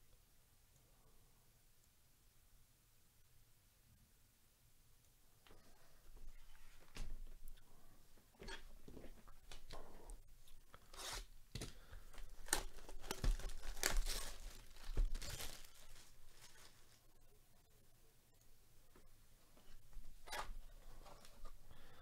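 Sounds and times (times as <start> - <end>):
plastic shrink wrap crinkling: 10.8 - 17.1.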